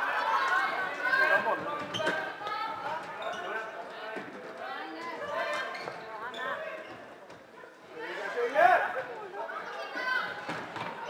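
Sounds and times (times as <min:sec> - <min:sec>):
players calling and shouting: 0:00.0 - 0:07.2.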